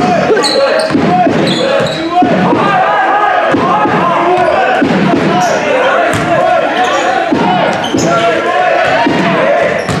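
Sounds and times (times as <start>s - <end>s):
sneakers squeaking: 0.0s - 2.5s, 4.1s - 10.0s
voices of players and spectators: 0.0s - 10.0s
basketball dribbled on wooden floor: 8.8s - 10.0s.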